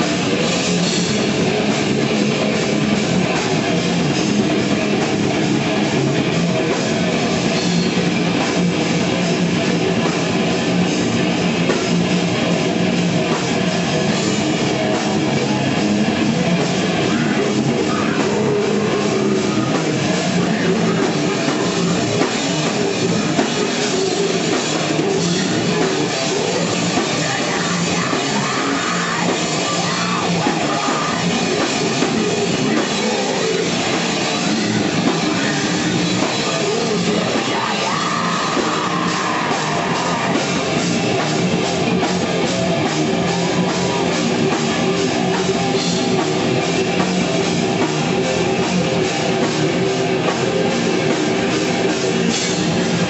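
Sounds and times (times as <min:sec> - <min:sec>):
distorted electric guitar: 0:00.0 - 0:53.0
drum kit: 0:00.0 - 0:53.0.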